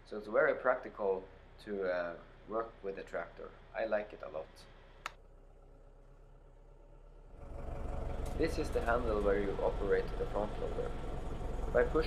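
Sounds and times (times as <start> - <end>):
diesel tractor engine idling: 4.8 - 12.0.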